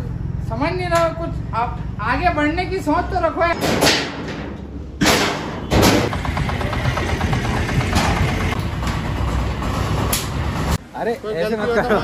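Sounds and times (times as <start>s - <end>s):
vehicle engine running: 5.9s - 10.8s.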